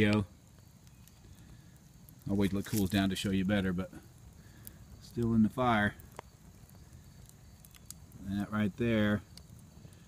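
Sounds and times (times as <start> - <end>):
fire crackles and pops: 0.0 - 10.0
wood fire burning: 0.0 - 10.0.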